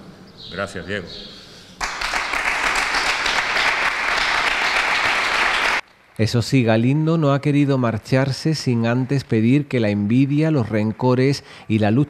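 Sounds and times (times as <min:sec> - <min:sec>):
audience applauding: 0:01.8 - 0:05.8.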